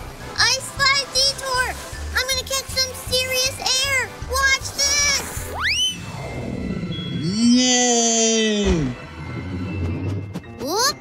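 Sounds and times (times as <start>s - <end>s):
background music: 0.0s - 11.0s
rising whistle-like swoop: 5.5s - 7.3s.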